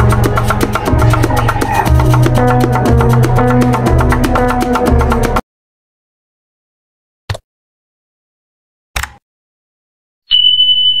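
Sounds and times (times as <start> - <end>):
high-pitched beep: 10.3 - 11.0.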